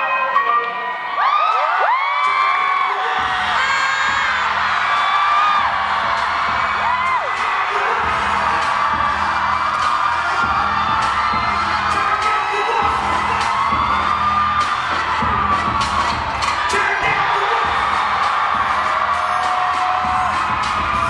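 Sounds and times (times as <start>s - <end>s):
audience whooping and screaming: 0.0s - 21.0s
hip hop track with heavy bass: 0.0s - 21.0s.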